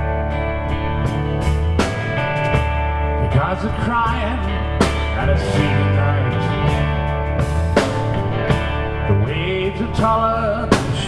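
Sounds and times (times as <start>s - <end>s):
drum kit with cymbals: 0.0s - 11.0s
electric guitar: 0.0s - 11.0s
rock band playing: 0.0s - 11.0s.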